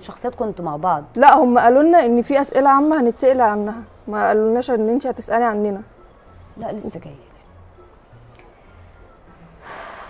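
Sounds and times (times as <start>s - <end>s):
low steady hum: 0.0s - 10.0s
intake of breath: 9.6s - 10.0s.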